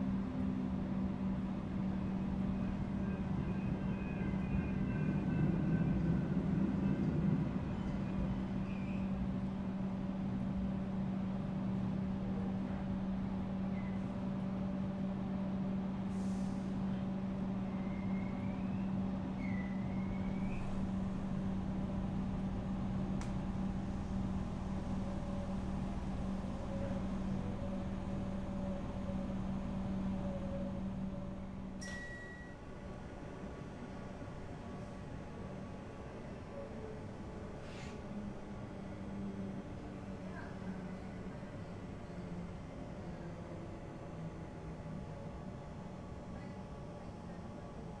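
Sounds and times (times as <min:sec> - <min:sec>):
train running hum: 0:00.0 - 0:48.0.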